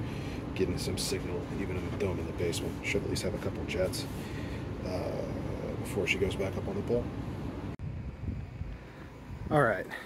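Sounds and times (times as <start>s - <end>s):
wind buffeting microphone: 7.4s - 9.8s.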